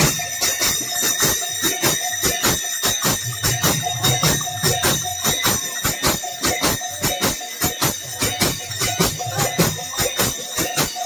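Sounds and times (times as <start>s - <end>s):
brass hand cymbals clashing: 0.0s - 11.0s.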